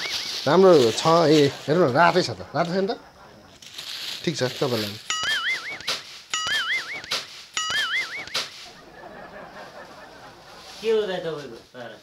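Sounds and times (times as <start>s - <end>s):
cartoon whistle slide and wobble: 5.1s - 8.5s.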